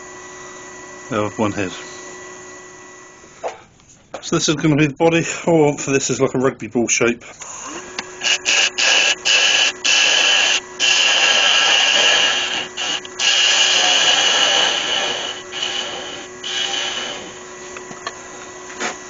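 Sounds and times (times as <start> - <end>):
faint steady hum: 0.0 - 18.9
lathe tool cutting wood: 7.4 - 18.0.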